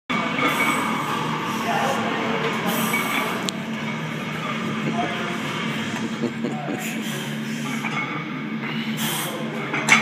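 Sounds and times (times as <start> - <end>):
gym background voices: 0.1 - 10.0.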